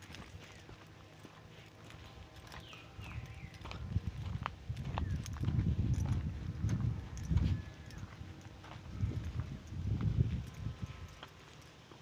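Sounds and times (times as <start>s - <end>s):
footsteps on dirt path: 0.0s - 12.0s
low rumble: 2.9s - 11.1s.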